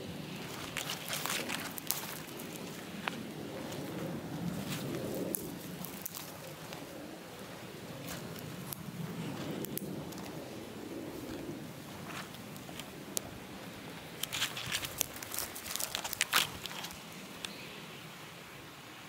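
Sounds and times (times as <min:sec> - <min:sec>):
small fire crackling: 0:00.0 - 0:17.6.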